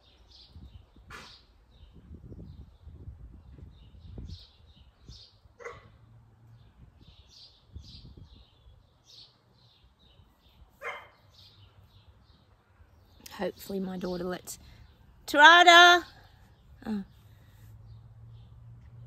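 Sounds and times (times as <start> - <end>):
birds chirping: 0.0 - 19.0
dog barking: 5.6 - 6.0, 10.8 - 11.2.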